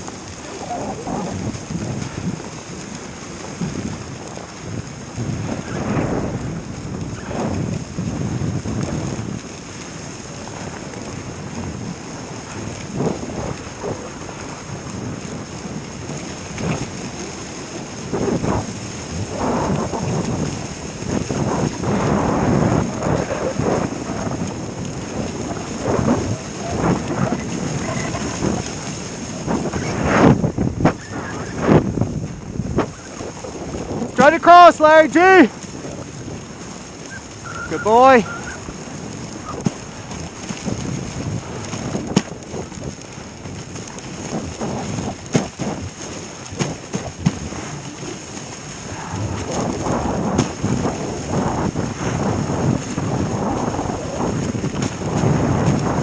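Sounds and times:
sled bumps and knocks: 0:00.0 - 0:56.0
sled runners scraping over snow: 0:00.0 - 0:56.0
wind buffeting microphone: 0:00.0 - 0:56.0.

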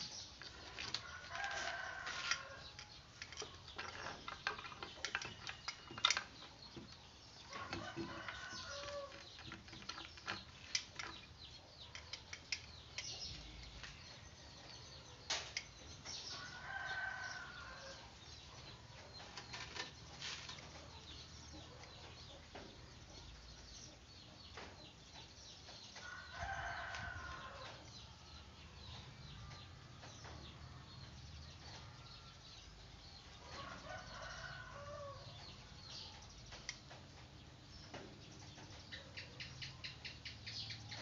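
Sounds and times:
animals rustling through grass: 0:00.0 - 0:02.5.

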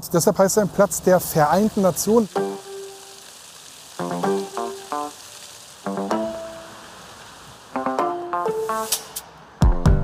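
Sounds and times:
fountain water splashing on stone: 0:00.0 - 0:09.0
music in runs of quick notes: 0:02.2 - 0:03.2, 0:03.9 - 0:05.2, 0:05.8 - 0:07.0, 0:07.8 - 0:09.0.

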